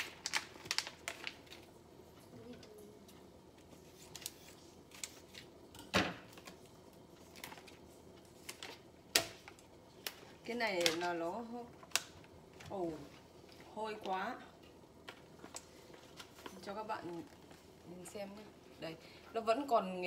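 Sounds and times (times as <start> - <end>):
plastic packaging crinkling: 0.0 - 1.8, 6.3 - 13.6.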